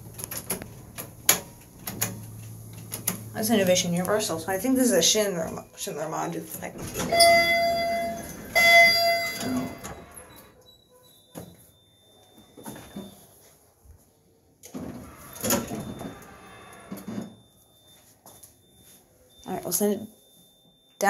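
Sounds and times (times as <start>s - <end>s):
lift doors sliding: 6.6s - 11.6s, 14.7s - 17.4s
elevator chime ding: 7.0s - 13.5s, 15.0s - 21.0s.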